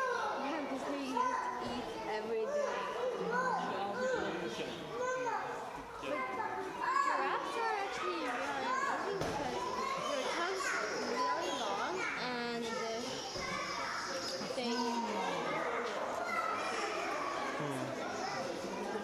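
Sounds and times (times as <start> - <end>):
crowd babble echoing indoors: 0.0 - 19.0.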